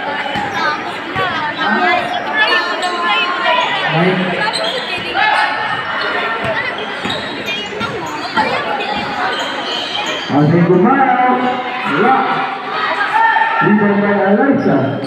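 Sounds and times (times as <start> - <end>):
people shouting and chattering: 0.0 - 15.0.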